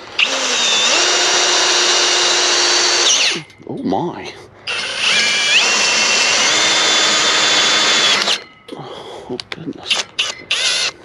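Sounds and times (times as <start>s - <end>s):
cordless drill boring through steel: 0.0s - 3.5s, 4.7s - 8.5s, 9.9s - 11.0s.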